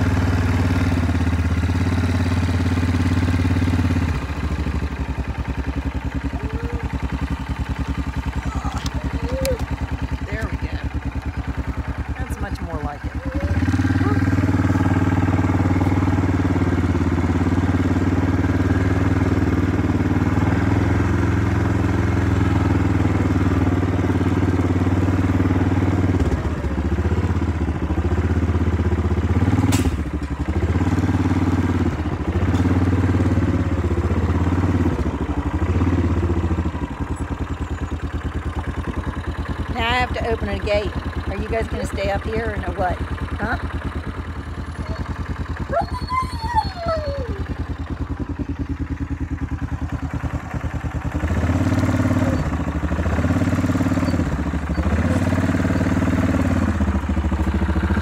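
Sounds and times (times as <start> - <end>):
quad bike engine: 0.0 - 58.0.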